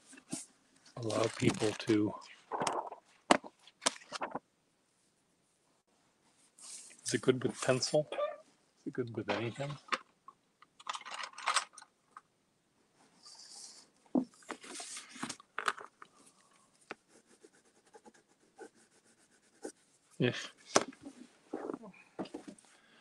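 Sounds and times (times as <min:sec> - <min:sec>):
pen scribbling on paper: 0:17.1 - 0:19.8.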